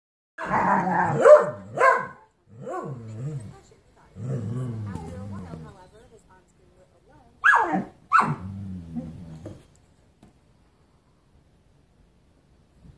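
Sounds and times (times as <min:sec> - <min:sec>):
dog growling: 0:00.4 - 0:01.8, 0:02.5 - 0:05.8, 0:07.7 - 0:09.8
sharp dog barks: 0:00.4 - 0:02.9, 0:07.4 - 0:08.4.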